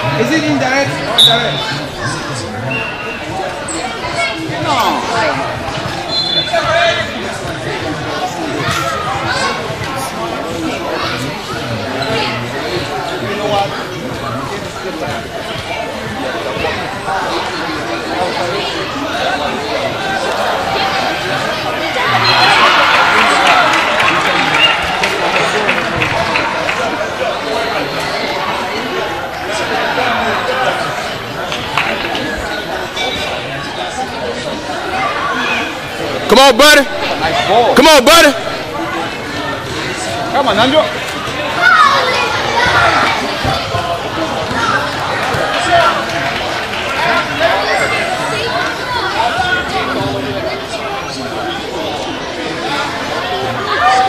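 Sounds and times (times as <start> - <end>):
children calling and shouting: 0.0 - 54.0
hubbub of players and spectators: 0.0 - 54.0
indistinct chatter in hall: 0.0 - 54.0.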